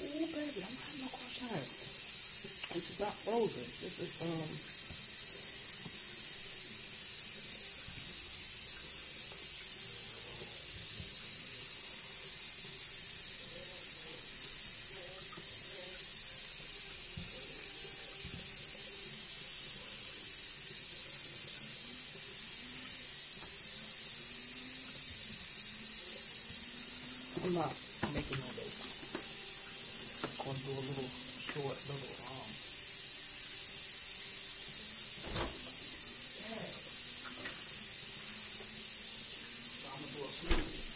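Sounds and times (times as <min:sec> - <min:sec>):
food sizzling in a pan: 0:00.0 - 0:40.9.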